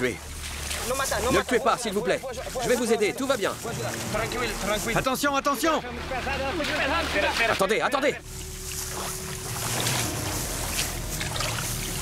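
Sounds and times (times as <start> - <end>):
water sloshing in marsh grass: 0.0 - 12.0.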